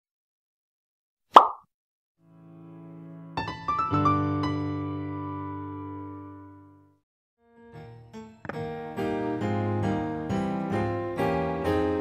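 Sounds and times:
short pop sound effect: 1.3s - 1.7s.

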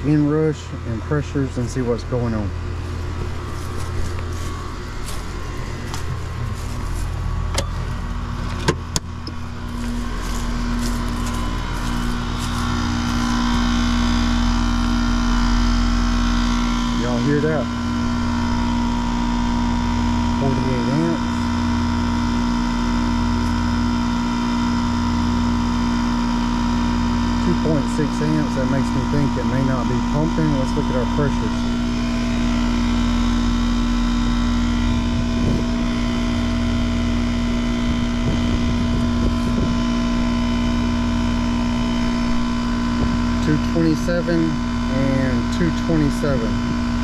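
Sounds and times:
high-pitched whine: 0.0s - 26.1s
compressor and fan motor hum: 0.0s - 47.0s.

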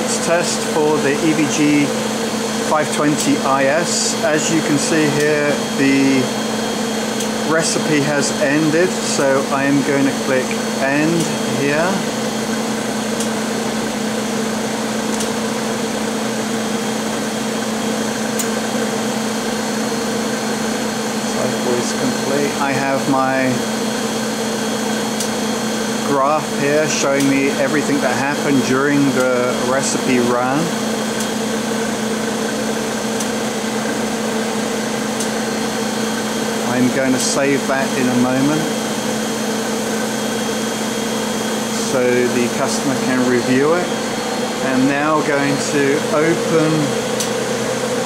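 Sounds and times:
machine hum and hiss: 0.0s - 48.0s.

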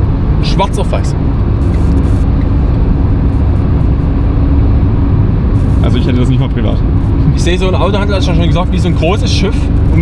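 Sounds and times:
road and engine rumble: 0.0s - 10.0s
faint steady hum: 1.3s - 10.0s.

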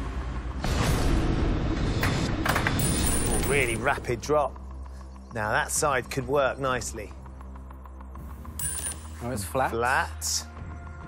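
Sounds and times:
background music: 0.0s - 11.0s
high ringing tone: 8.6s - 9.2s.

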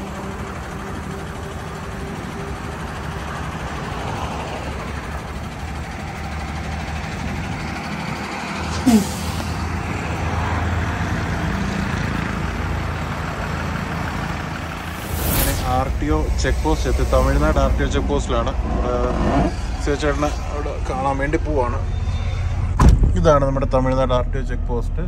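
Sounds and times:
truck diesel engine rumbling: 0.0s - 25.0s.

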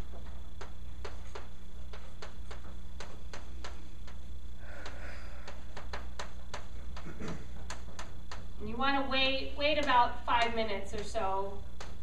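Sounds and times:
steady low hum: 0.0s - 12.0s
chalk tapping on a blackboard: 0.1s - 8.5s.

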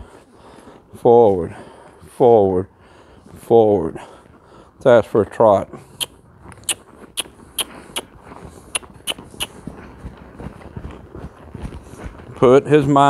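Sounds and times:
hoof thuds on sand: 6.7s - 13.0s.

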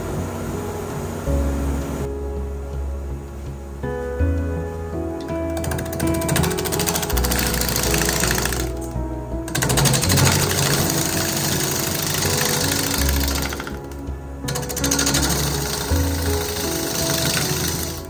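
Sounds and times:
music: 0.0s - 18.0s
lathe gouge cutting wood: 5.6s - 8.9s, 9.5s - 18.0s.

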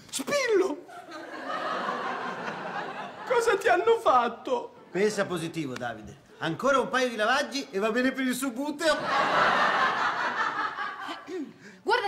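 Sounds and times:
audience laughing: 0.9s - 3.8s, 8.9s - 11.5s.

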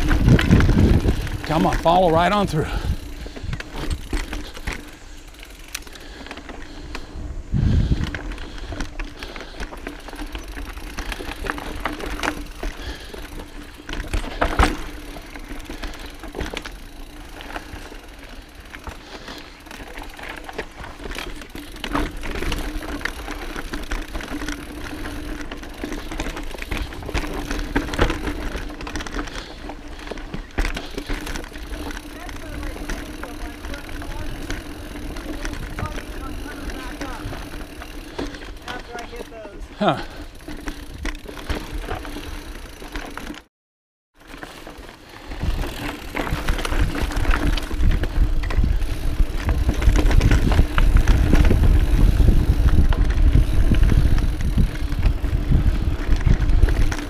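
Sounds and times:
bike knocking and rattling over bumps: 0.0s - 43.5s, 44.2s - 57.0s
bike tyres rolling on dirt: 0.0s - 43.5s, 44.2s - 57.0s.

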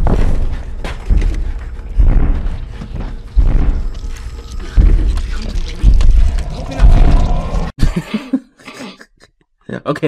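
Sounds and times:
heavy booming footsteps: 0.0s - 7.7s.

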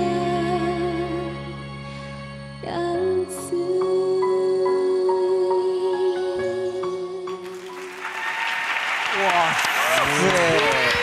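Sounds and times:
ballad backing music: 0.0s - 7.8s
applause: 7.4s - 11.0s.

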